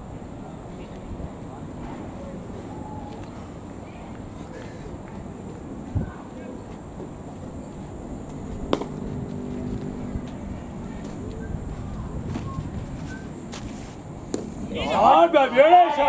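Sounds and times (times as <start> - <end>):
cricket bat striking ball: 8.7 - 9.1, 14.3 - 14.6
players shouting: 14.6 - 16.0.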